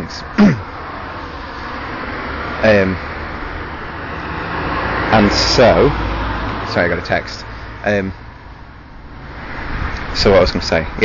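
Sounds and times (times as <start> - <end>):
low rumble of vehicles: 0.0 - 11.0.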